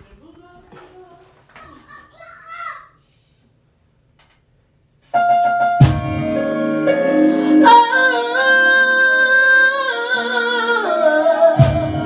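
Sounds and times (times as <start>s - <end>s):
high-pitched voice talking: 1.6s - 3.0s.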